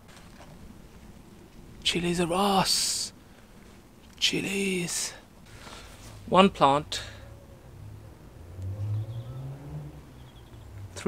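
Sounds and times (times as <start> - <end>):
faint outdoor background: 0.0 - 11.0
low engine hum: 6.9 - 11.0.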